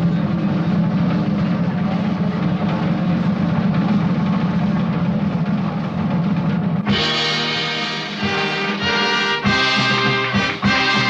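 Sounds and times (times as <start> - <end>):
loud background din: 0.0 - 11.0.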